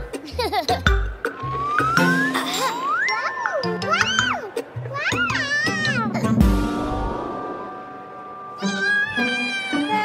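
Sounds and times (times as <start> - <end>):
background music: 0.0 - 10.0
cartoon toddler whimpering: 2.0 - 6.4, 8.6 - 10.0.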